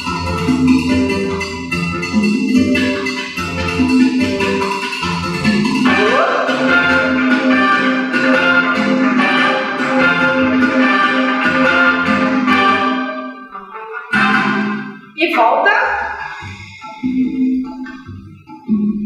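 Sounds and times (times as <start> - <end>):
background music with steady beat: 0.0 - 19.0.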